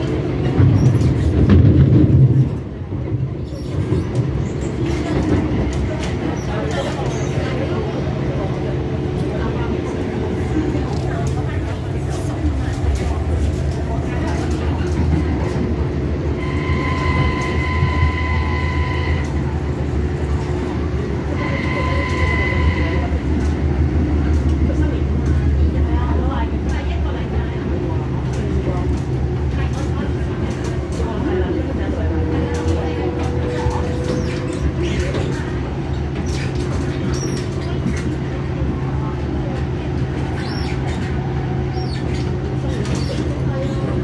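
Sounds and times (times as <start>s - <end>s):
train motors and wheels rumbling: 0.0s - 44.0s.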